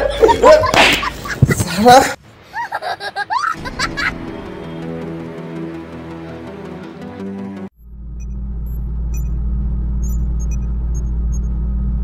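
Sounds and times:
low droning rumble: 7.8s - 12.0s.

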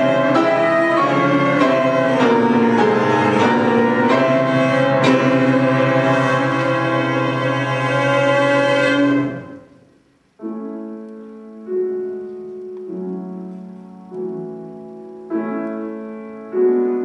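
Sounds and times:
grand piano playing sustained chords: 0.0s - 17.0s.

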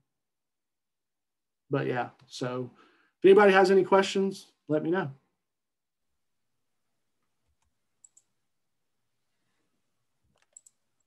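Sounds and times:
computer mouse clicks: 7.2s - 8.4s, 10.2s - 11.0s.

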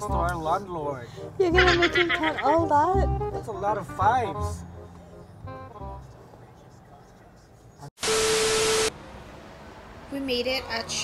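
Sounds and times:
static white noise burst: 8.0s - 8.9s.

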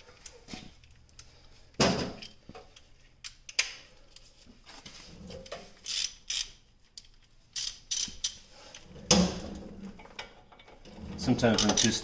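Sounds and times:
ratchet and socket clinking: 5.8s - 8.4s, 11.5s - 12.0s.

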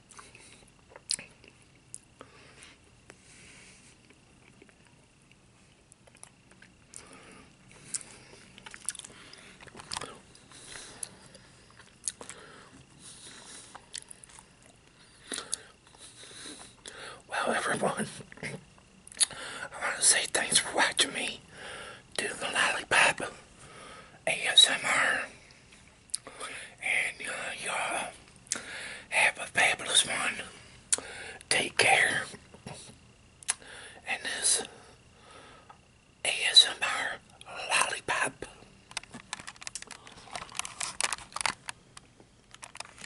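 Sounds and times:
wet chewing and sucking: 7.8s - 12.4s
handling clicks and crackles: 38.8s - 43.0s.

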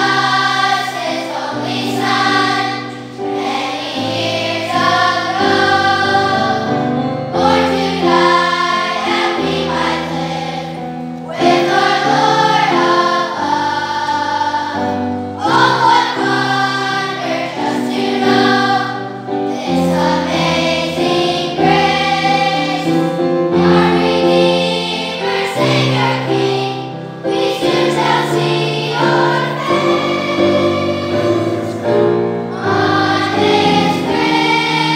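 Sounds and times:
children's choir singing: 0.0s - 34.9s
instrumental accompaniment: 0.0s - 34.9s.

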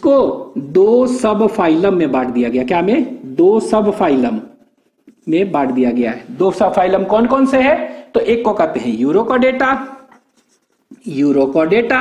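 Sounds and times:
man speaking: 0.0s - 10.0s
marker on whiteboard: 0.4s - 12.0s.

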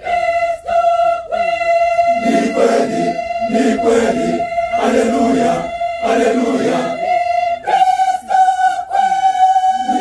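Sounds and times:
choir singing a cappella: 0.0s - 10.0s.

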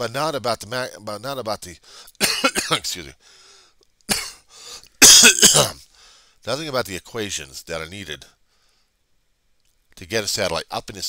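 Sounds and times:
man coughing: 2.2s - 2.9s, 4.1s - 4.4s, 5.0s - 5.8s.

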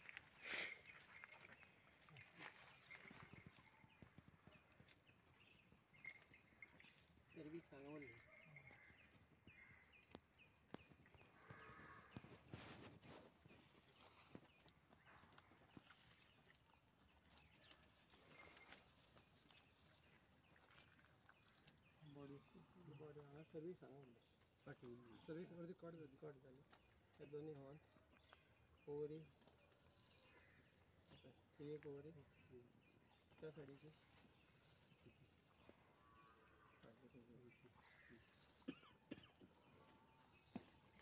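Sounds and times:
faint clicks and rustles: 0.0s - 22.6s.

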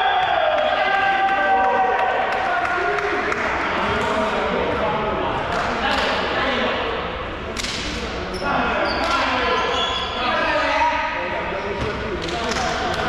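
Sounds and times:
players' voices echoing: 0.0s - 13.0s.

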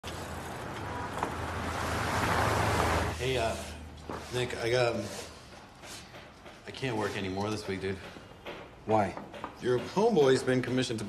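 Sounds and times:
city street traffic: 0.0s - 4.1s
car driving past: 0.1s - 3.2s.

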